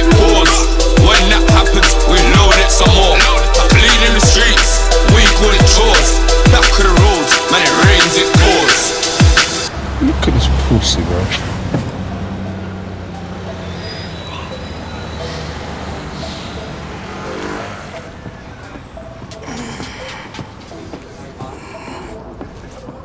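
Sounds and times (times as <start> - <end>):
vehicle engine hum: 8.6 - 23.0
faint indistinct voices: 18.0 - 23.0.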